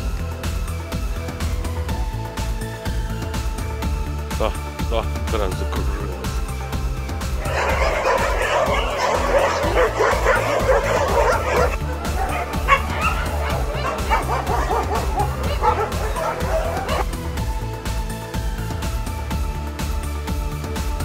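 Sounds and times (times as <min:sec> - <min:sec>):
background music: 0:00.0 - 0:21.0
dog barking: 0:07.4 - 0:17.1.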